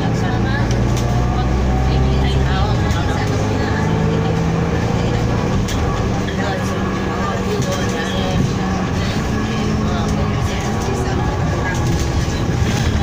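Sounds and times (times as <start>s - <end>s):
bus diesel engine drone: 0.0s - 13.0s
rising drivetrain whine: 0.0s - 13.0s.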